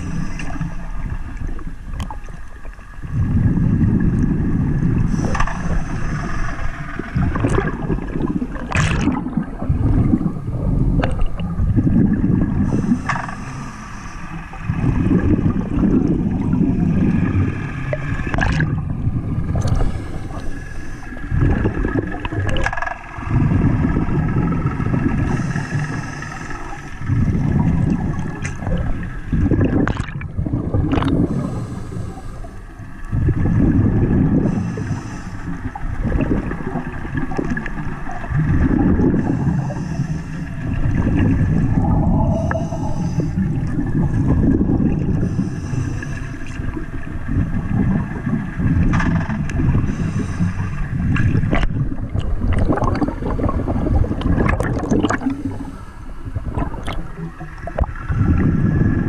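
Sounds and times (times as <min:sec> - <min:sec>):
faint steady whine: 0:00.0 - 0:59.0
underwater rumbling water noise: 0:00.0 - 0:59.0.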